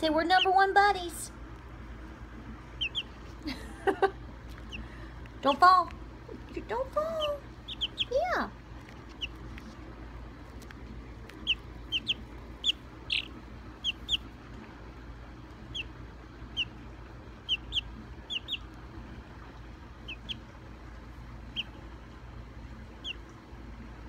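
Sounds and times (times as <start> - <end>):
chick peeping: 0.0 - 0.8, 2.7 - 5.8, 6.4 - 9.8, 11.2 - 14.5, 15.5 - 16.8, 17.4 - 18.8, 20.0 - 20.5, 21.4 - 21.8, 22.9 - 23.3.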